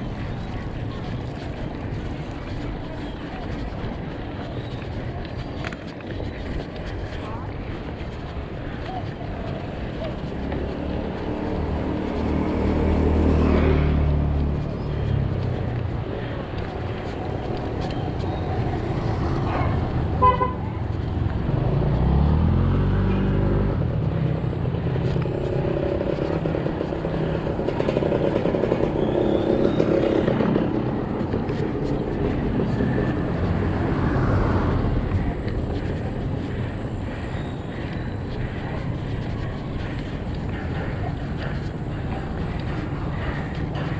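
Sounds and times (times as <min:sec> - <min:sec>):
bicycle riding on pavement: 0:00.0 - 0:43.9
vehicle engine passing: 0:09.8 - 0:43.9.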